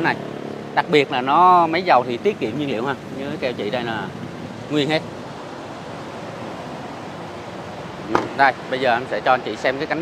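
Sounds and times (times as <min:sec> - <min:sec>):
steady rushing background noise: 0:00.0 - 0:10.0.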